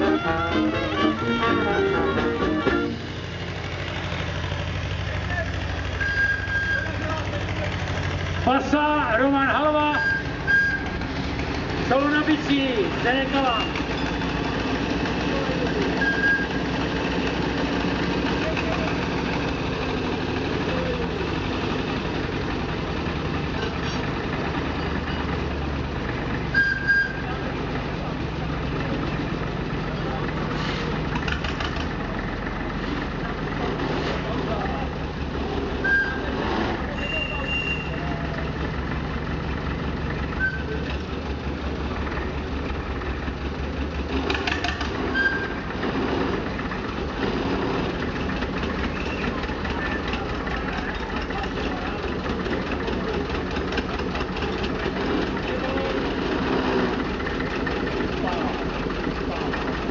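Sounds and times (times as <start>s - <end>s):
diesel locomotive idling: 0.0s - 59.9s
people talking: 5.1s - 5.7s, 6.7s - 7.9s, 15.2s - 16.4s, 18.2s - 19.2s, 20.6s - 21.3s, 29.8s - 31.0s, 33.2s - 38.6s, 49.2s - 53.6s, 54.3s - 56.5s, 58.0s - 59.8s.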